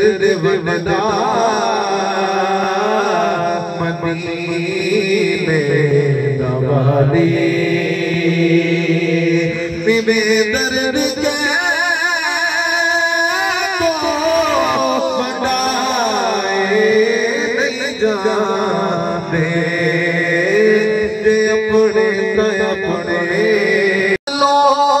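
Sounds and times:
man singing into a microphone: 0.0s - 25.0s.

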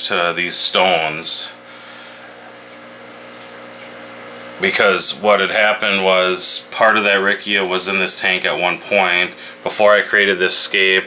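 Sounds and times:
aquarium pumps humming: 0.0s - 11.0s.

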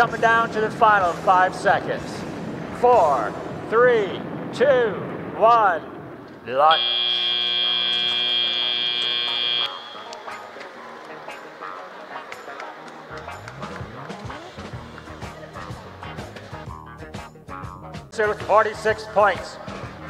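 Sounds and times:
loud buzzer tone: 6.7s - 10.5s
crowd chatter: 7.6s - 16.4s.

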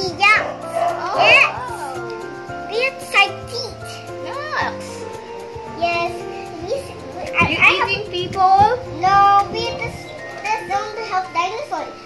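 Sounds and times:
background music with held notes: 0.0s - 12.0s
child's playful vocal sounds: 2.7s - 5.1s, 5.8s - 12.0s.

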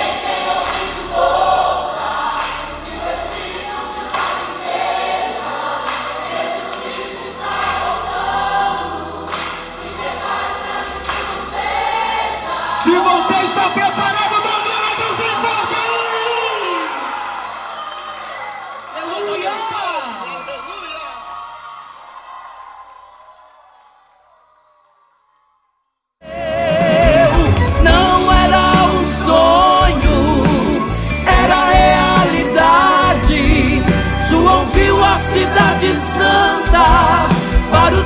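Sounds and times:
congregation singing: 0.0s - 14.5s, 26.2s - 38.0s
live worship band: 0.0s - 18.7s, 26.2s - 38.0s
hands clapping: 0.5s - 1.0s, 2.3s - 3.4s, 4.0s - 4.7s, 5.8s - 8.1s, 9.3s - 9.9s, 11.0s - 11.5s.

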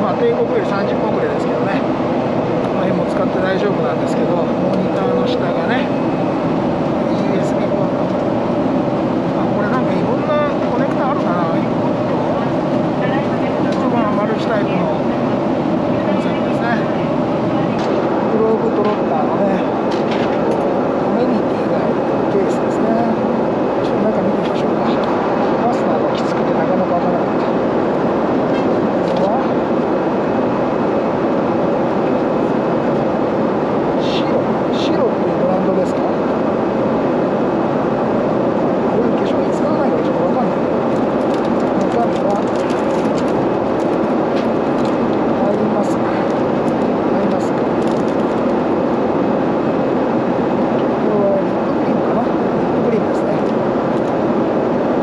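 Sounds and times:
airliner cabin noise: 0.0s - 55.0s.

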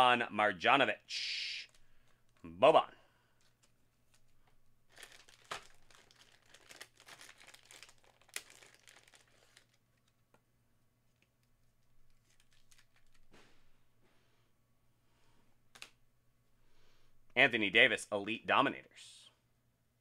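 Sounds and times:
plastic card sleeve crinkling: 1.6s - 2.4s, 3.4s - 10.4s, 11.1s - 13.4s.

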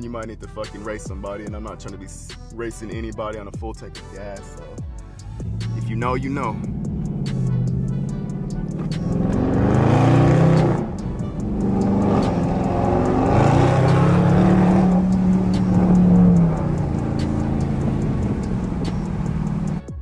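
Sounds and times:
car engine accelerating: 5.2s - 19.9s.

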